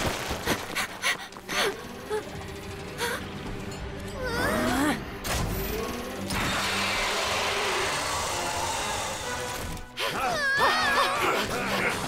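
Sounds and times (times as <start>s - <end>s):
background music: 1.2s - 12.0s.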